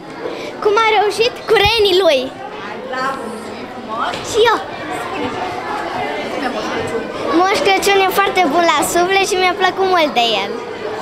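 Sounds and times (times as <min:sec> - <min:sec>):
schoolchildren chattering: 0:00.0 - 0:11.0
girl speaking: 0:00.6 - 0:02.3, 0:04.3 - 0:04.7.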